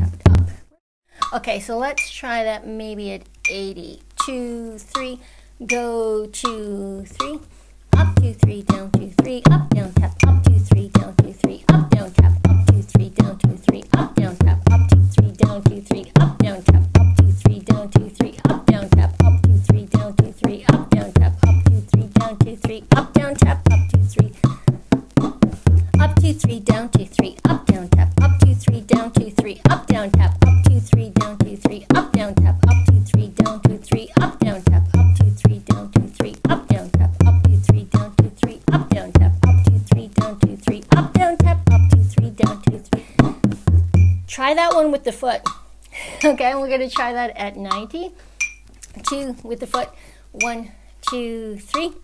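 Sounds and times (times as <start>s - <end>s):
deep booming drum bass note: 0.0s - 0.6s, 8.0s - 44.3s.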